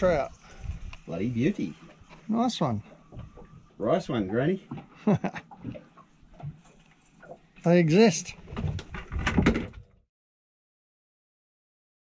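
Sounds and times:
knocks and clatters on boat deck: 3.1 - 3.6, 8.4 - 10.0.

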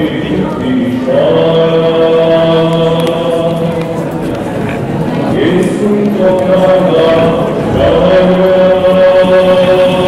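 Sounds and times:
male voices chanting: 0.0 - 3.9, 5.3 - 10.0.

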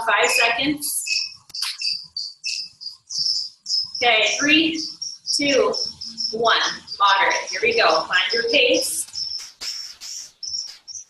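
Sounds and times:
sharp click: 1.4 - 1.9, 9.0 - 11.0.

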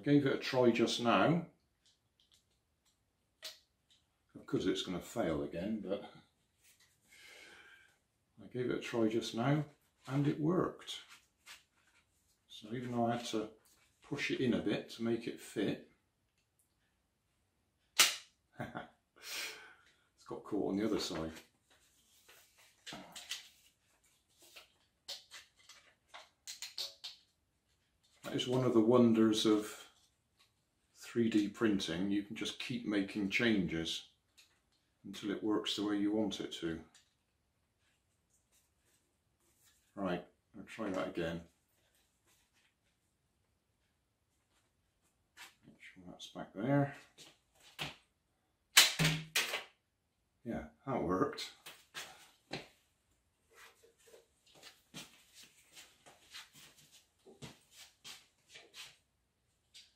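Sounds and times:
rubber band snap: 18.0 - 18.3, 48.8 - 49.7
paper rustling: 21.1 - 26.4.

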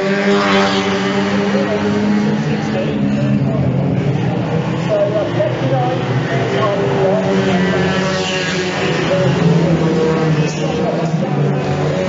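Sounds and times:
race car engines revving: 0.0 - 12.0.

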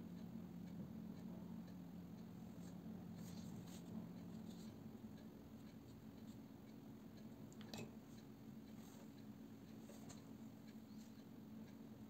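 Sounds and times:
low steady hum: 0.0 - 12.0
paintbrush strokes on paper: 2.5 - 4.8.

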